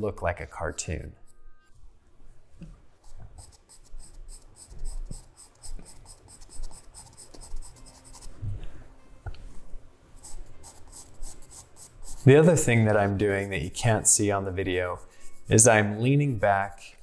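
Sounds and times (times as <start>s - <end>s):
pencil scratching on paper: 3.0s - 8.4s, 10.2s - 17.0s.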